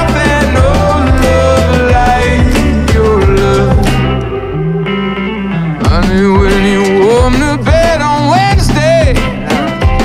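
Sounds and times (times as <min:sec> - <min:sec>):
instrumental pop-rock band music: 0:00.0 - 0:10.0.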